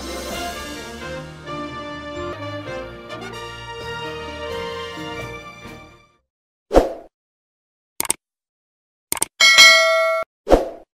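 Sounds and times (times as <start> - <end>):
bright bell chime: 9.4 - 10.2.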